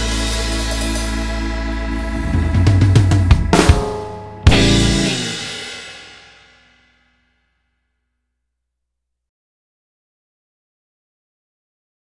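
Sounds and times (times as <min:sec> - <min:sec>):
blues band playing: 0:00.0 - 0:06.3
drum hits and cymbals: 0:00.0 - 0:06.8
final chord ringing: 0:01.8 - 0:06.5.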